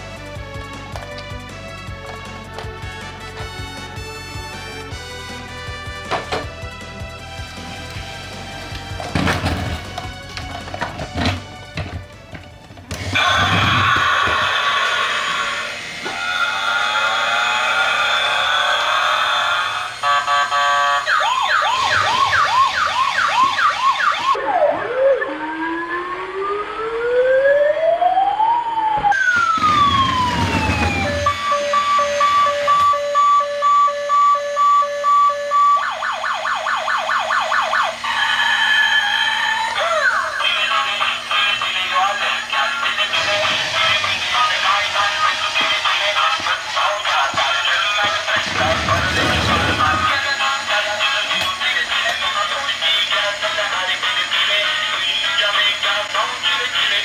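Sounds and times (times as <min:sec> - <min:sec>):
toy police car siren: 0:13.0 - 0:54.6
electronic beeping: 0:30.8 - 0:36.0.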